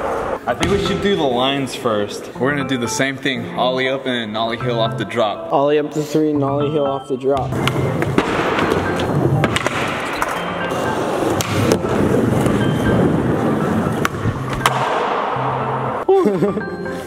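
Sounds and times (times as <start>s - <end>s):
skateboard wheels rolling on concrete: 7.6s - 14.7s.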